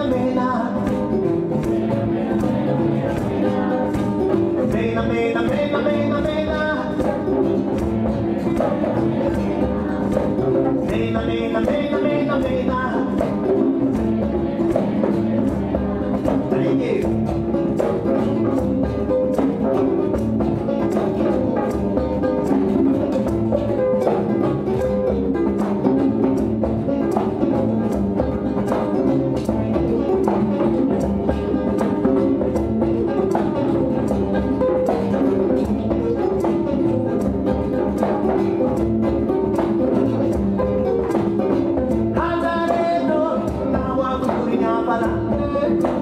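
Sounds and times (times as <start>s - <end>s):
acoustic guitar: 0.0s - 46.0s.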